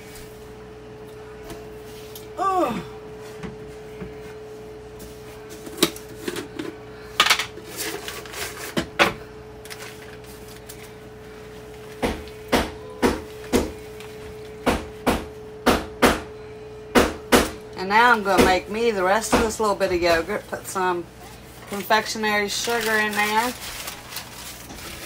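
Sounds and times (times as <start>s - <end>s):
steady hum: 0.0s - 25.0s.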